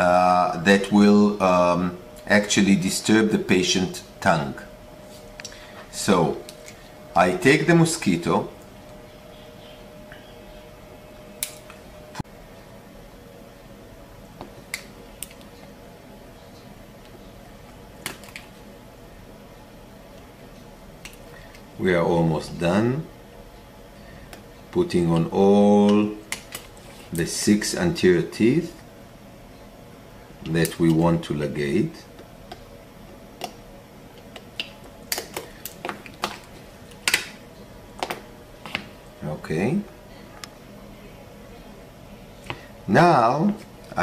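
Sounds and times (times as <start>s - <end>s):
man talking: 0.0s - 4.8s, 5.9s - 6.5s, 7.1s - 8.6s, 21.8s - 23.1s, 24.7s - 26.2s, 27.1s - 28.8s, 30.4s - 32.1s, 39.2s - 39.9s, 42.9s - 44.0s
faint steady hum: 0.0s - 44.0s.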